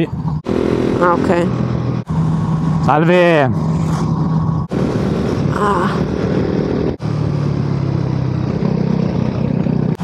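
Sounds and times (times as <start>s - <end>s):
motorcycle engine running: 0.0s - 10.0s
wind noise: 0.0s - 10.0s.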